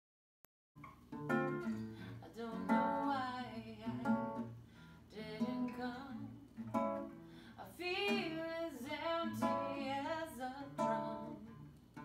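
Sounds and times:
acoustic guitar plucked notes: 0.8 - 4.6, 5.2 - 7.4, 8.0 - 12.0.

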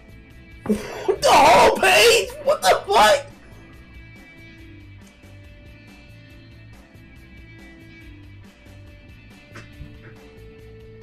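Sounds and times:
faint background music: 0.0 - 11.0
man wailing cry: 0.7 - 3.4.

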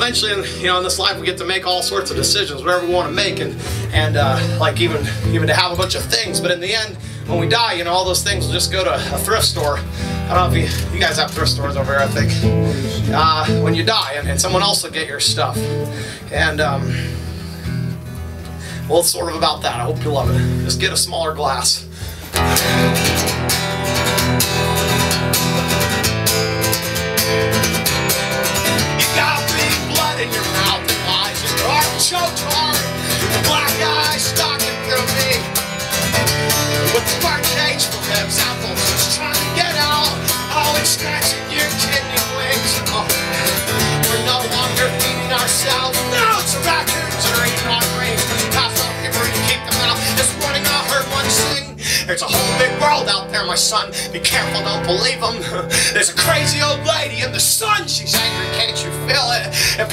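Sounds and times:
electric bass: 0.0 - 59.9
strummed guitar: 0.0 - 59.9.

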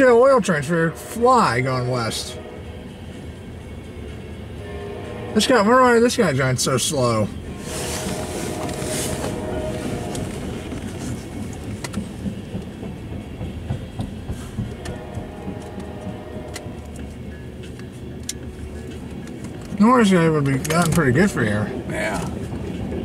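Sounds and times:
freight train rumbling past: 0.0 - 23.0.

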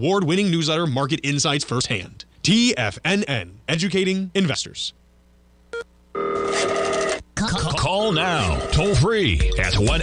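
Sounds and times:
telephone ringing: 6.2 - 7.2, 8.0 - 9.0
person speaking: 7.4 - 10.0.

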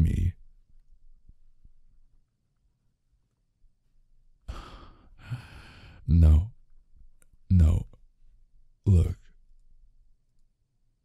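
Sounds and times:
man sighing: 4.5 - 6.0.

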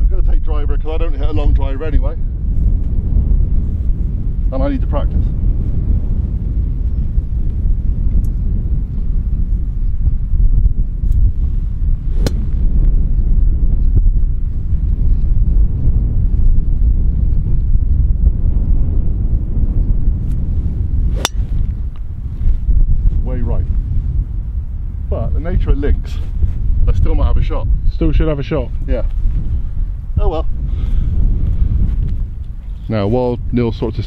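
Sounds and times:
wind buffeting microphone: 0.0 - 34.0
golf ball struck by driver: 12.2 - 12.7, 21.1 - 22.0.

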